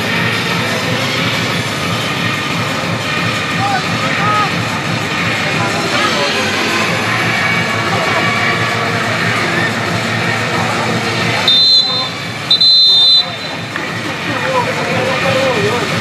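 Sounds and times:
din of players' voices: 0:00.0 - 0:16.0
referee's whistle blasts: 0:11.4 - 0:13.7.

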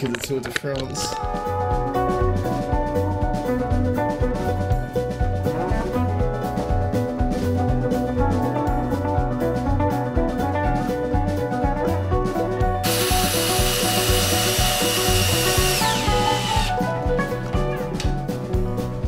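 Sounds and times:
background music with steady beat: 0:00.0 - 0:19.0
cordless drill driving screw: 0:12.8 - 0:16.8.

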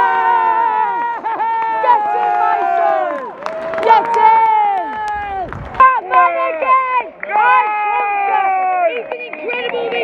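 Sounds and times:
football supporters cheering: 0:00.0 - 0:10.0.

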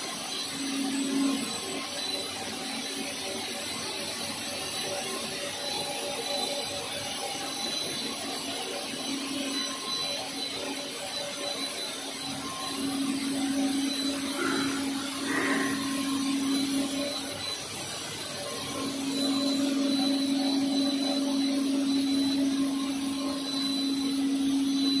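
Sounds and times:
machinery noise: 0:12.2 - 0:25.0
low motor hum: 0:12.6 - 0:17.2.

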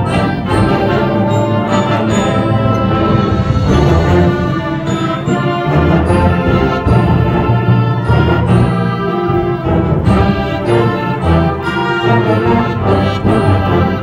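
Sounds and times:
concert band playing: 0:00.0 - 0:14.0.

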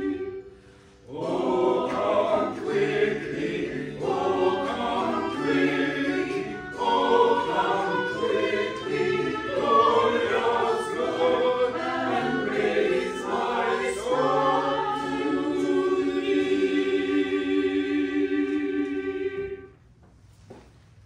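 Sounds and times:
church choir singing: 0:00.0 - 0:19.9.

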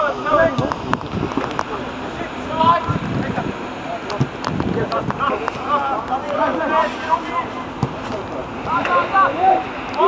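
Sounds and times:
wind rumbling on microphone: 0:00.3 - 0:05.7
players shouting: 0:01.8 - 0:10.0
ball being kicked: 0:04.2 - 0:04.7, 0:07.8 - 0:08.2.

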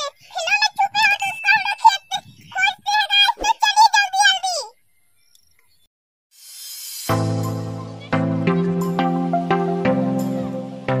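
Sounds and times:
faint steady high tone: 0:00.0 - 0:02.8
child talking high-pitched: 0:00.0 - 0:04.8.

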